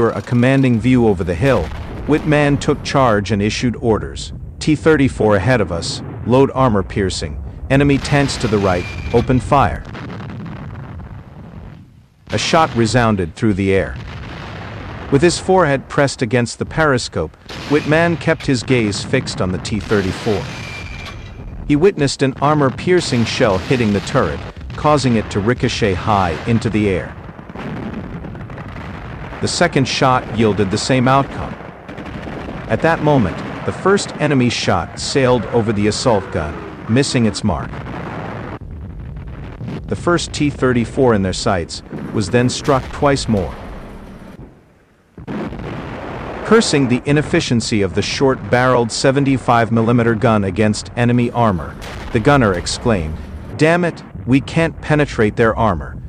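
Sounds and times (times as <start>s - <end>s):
heavy gunshot rumble: 7.3s - 15.9s, 17.3s - 48.9s, 51.4s - 54.9s.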